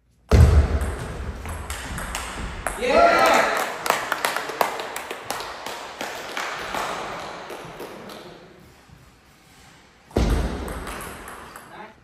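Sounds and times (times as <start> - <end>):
people clapping: 2.1 - 8.5.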